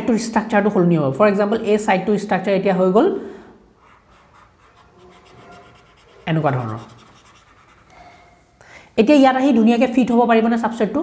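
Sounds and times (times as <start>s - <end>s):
person speaking: 3.8s - 7.8s
stylus scratching on drawing tablet: 3.8s - 8.4s.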